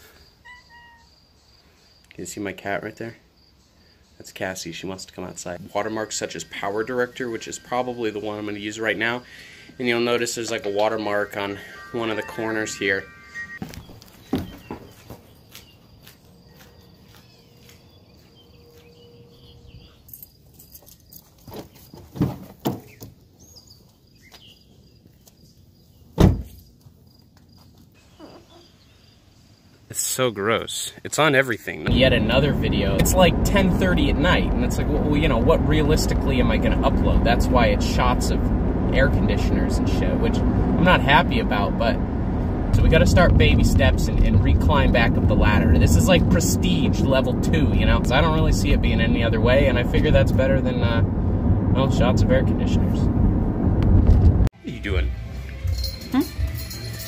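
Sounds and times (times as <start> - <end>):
faint high chirping: 0.0 - 2.1, 5.3 - 21.2
cat meowing: 0.4 - 1.2
faint steady high tone: 6.4 - 13.6
loud thump: 26.2 - 26.6, 53.0 - 54.5.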